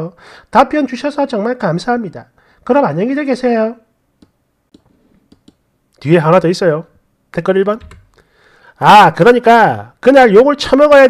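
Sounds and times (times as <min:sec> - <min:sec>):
faint computer mouse clicks: 0:04.2 - 0:05.6.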